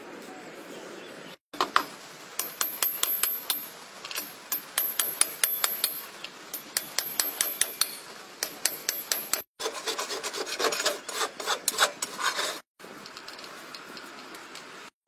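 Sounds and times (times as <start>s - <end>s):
rasp filing a hoof: 9.6s - 12.7s.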